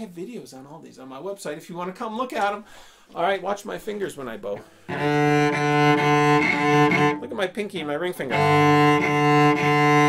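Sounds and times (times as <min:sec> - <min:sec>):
cello bowed low note: 0:04.9 - 0:07.4, 0:08.2 - 0:10.0.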